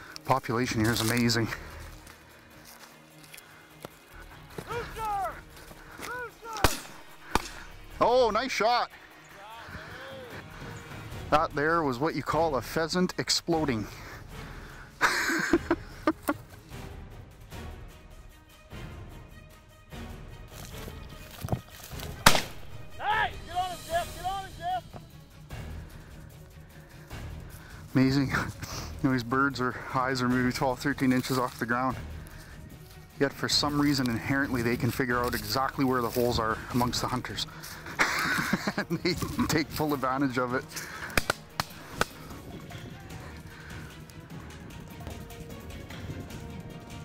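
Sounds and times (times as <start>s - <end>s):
low background music: 0.0s - 47.0s
sharp crack: 6.5s - 7.8s, 21.8s - 22.8s, 41.0s - 42.4s
shotgun shot: 6.6s - 7.6s, 22.2s - 22.8s.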